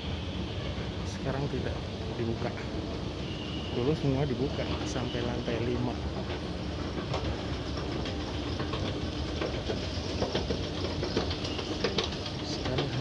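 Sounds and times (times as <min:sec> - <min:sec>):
escalator mechanical rumble: 0:00.0 - 0:13.0
clicks and clacks: 0:05.8 - 0:13.0.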